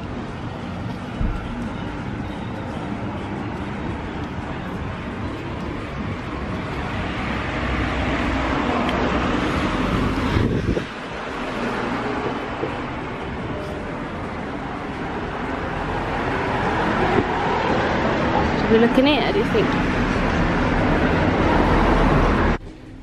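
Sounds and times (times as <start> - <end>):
road traffic passing: 0.0 - 23.0.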